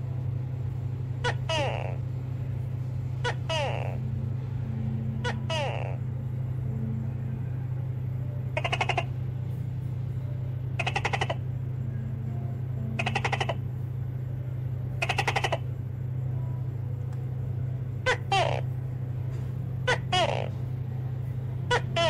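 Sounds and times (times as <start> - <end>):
low hum: 0.0 - 22.0
animal rattling calls: 3.2 - 4.0, 8.6 - 9.2, 10.8 - 11.4, 13.0 - 13.6, 15.0 - 15.6, 18.0 - 18.7, 19.8 - 20.6, 21.7 - 22.0.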